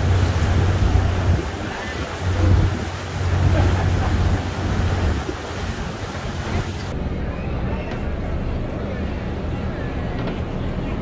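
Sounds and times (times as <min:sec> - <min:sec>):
wind buffeting microphone: 0:00.0 - 0:06.9
water washing past boat hull: 0:00.0 - 0:07.0.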